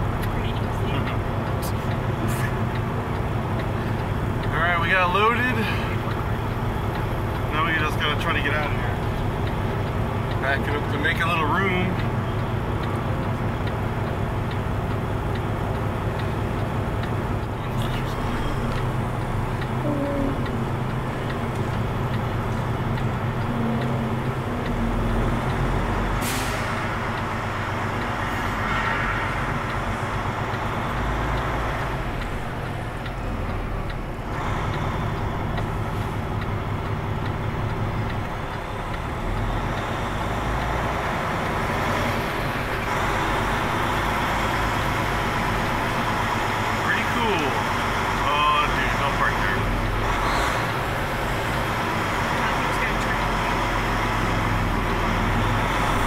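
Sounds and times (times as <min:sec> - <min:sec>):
diesel truck engine running: 0:00.0 - 0:56.0.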